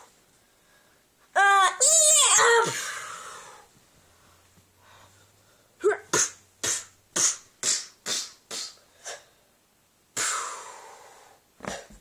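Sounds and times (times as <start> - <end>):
person making breathy huffs: 10.2 - 12.0.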